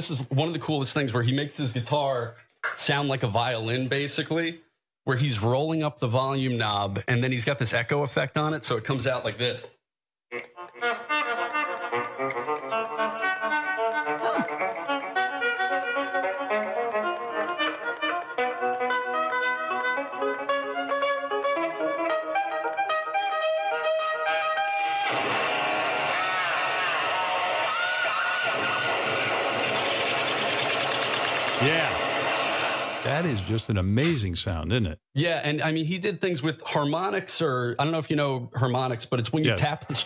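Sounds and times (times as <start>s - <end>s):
electric guitar with echo: 10.3s - 33.4s.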